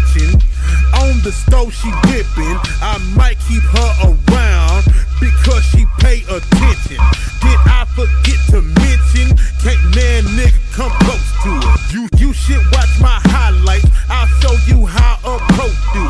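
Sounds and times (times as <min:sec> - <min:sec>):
heavy sub-bass: 0:00.0 - 0:16.0
rapping over a beat: 0:00.0 - 0:16.0.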